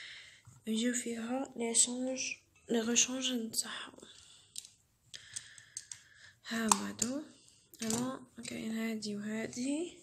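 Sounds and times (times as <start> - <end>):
small plastic clicks and taps: 4.5 - 7.2.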